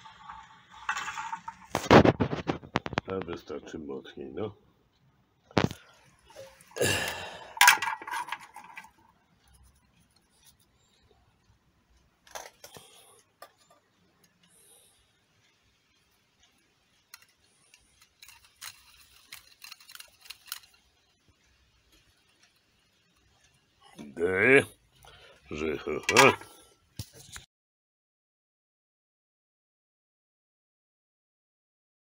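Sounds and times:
plastic spinning top clicks: 17.1s - 21.1s.

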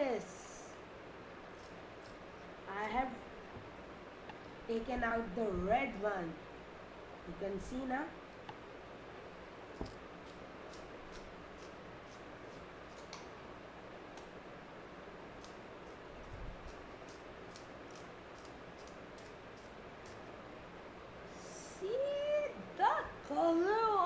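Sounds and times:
low room hiss: 0.0s - 24.0s.

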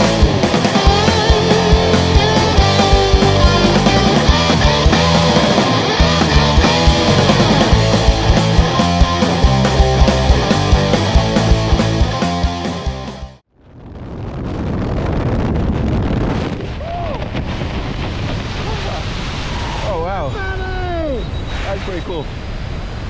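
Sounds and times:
rock music: 0.0s - 13.4s
wind over microphone: 13.6s - 23.0s.

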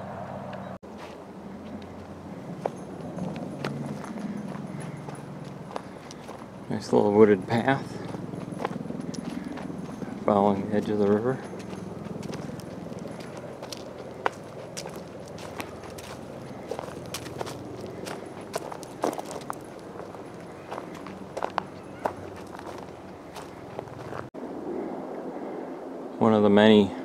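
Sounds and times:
footsteps crunching on gravel: 0.9s - 24.4s
steady rushing background noise: 1.2s - 26.8s.

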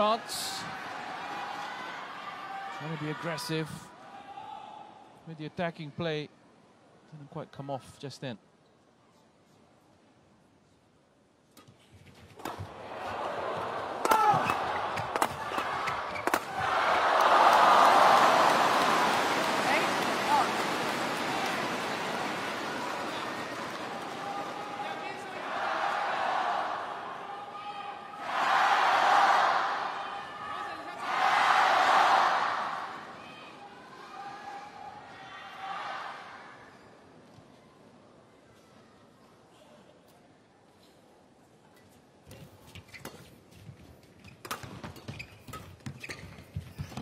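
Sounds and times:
crowd cheering: 0.0s - 3.6s, 12.4s - 36.4s
rackets hitting shuttlecock: 14.0s - 16.6s.

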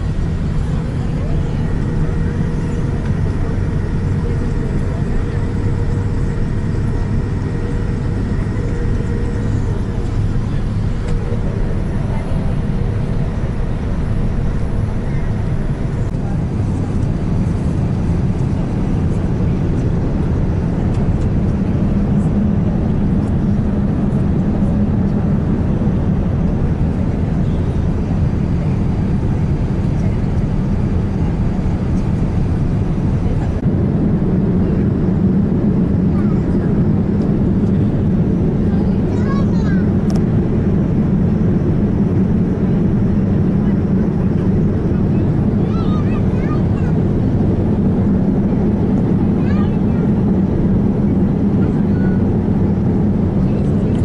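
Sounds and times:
jet engines rumbling: 0.0s - 54.0s.

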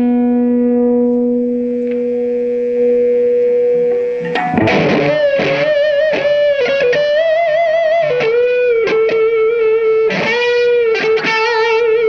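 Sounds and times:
overdriven electric guitar note: 0.0s - 12.0s.

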